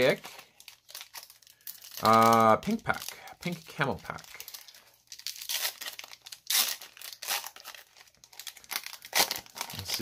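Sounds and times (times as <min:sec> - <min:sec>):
plastic wrapper tearing and crinkling: 0:00.0 - 0:10.0.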